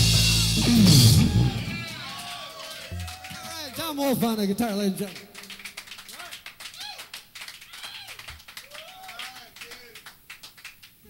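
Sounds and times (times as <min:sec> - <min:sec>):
audience clapping: 0:00.9 - 0:11.0
people talking: 0:03.3 - 0:05.3.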